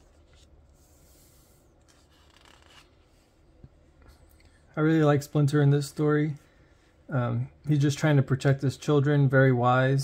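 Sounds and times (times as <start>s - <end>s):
hands rubbing paper pages: 0.0s - 3.4s.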